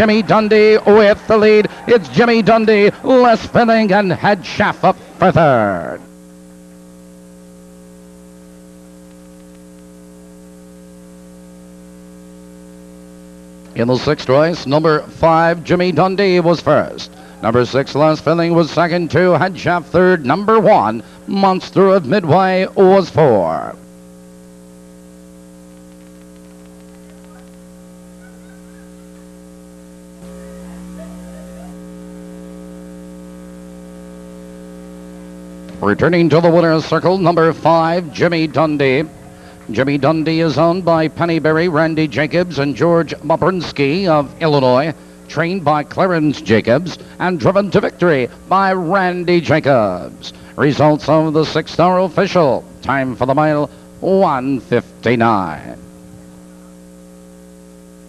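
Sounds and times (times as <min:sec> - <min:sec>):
electrical mains hum: 0:00.0 - 0:58.0.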